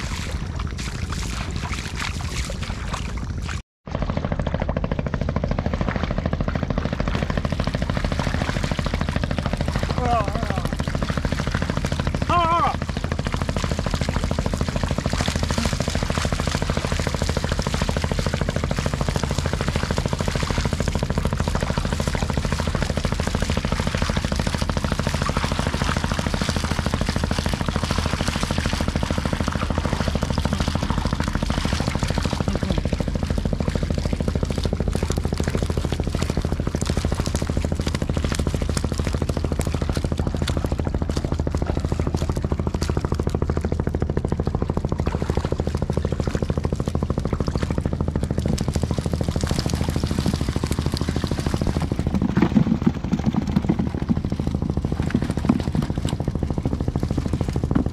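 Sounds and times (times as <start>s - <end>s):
engine running steadily: 0.0s - 57.9s.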